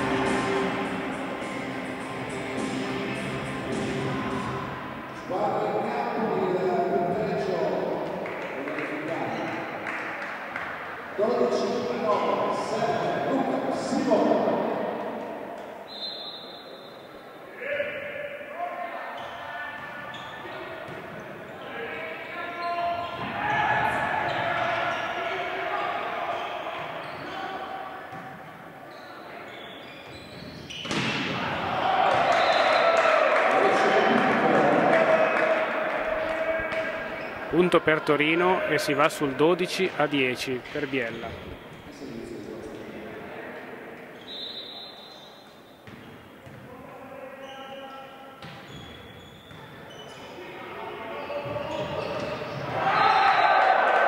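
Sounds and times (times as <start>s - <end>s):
referee's whistle: 15.9s - 17.1s, 32.2s - 33.0s, 44.2s - 45.8s
players shouting: 21.6s - 28.2s, 31.0s - 41.2s, 50.7s - 54.0s
volleyball hitting floor: 30.8s - 32.5s.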